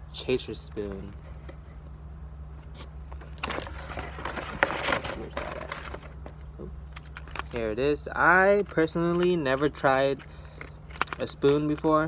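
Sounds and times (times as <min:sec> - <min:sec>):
packaging rustling and crinkling: 0:03.1 - 0:07.6, 0:08.6 - 0:11.9.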